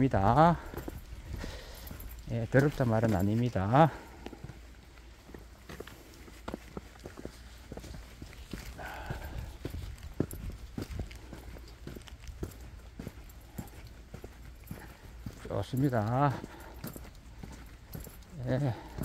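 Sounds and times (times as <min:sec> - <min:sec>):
footsteps on dirt trail: 0:00.0 - 0:19.0.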